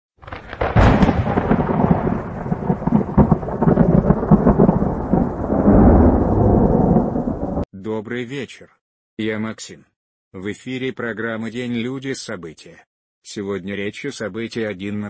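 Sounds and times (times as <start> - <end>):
thunder crack and rumble: 0.2 - 7.6.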